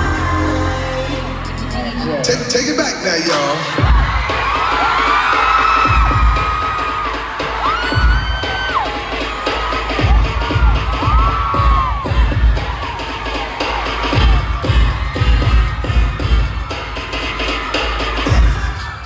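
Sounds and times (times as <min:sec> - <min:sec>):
audience screaming: 0:00.0 - 0:19.0
pop dance track over loudspeakers: 0:00.0 - 0:19.0.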